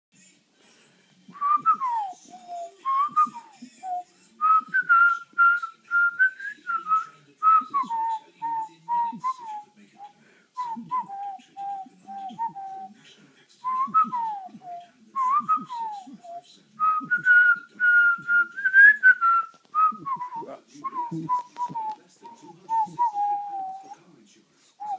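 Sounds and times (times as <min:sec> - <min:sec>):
person whistling: 0:16.9 - 0:24.0.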